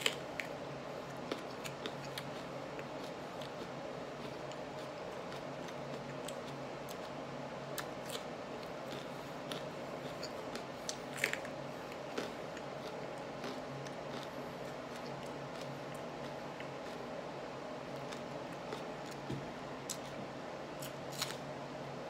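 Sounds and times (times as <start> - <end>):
chewing with wet crunches: 0.0 - 17.2, 17.8 - 20.2
steady low hum: 0.0 - 22.0.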